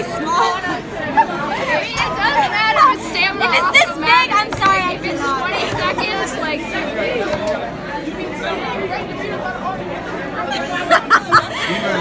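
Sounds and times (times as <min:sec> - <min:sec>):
chatter of many students: 0:00.0 - 0:12.0.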